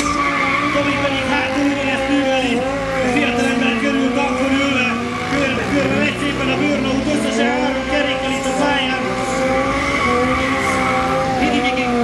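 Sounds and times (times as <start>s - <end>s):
quad engine at high revs: 0.0s - 12.0s
tyres skidding on asphalt: 0.0s - 12.0s.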